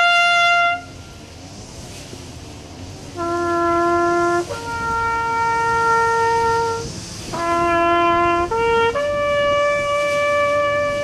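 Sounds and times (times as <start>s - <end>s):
solo trumpet holding notes: 0.0s - 1.2s, 3.2s - 11.0s.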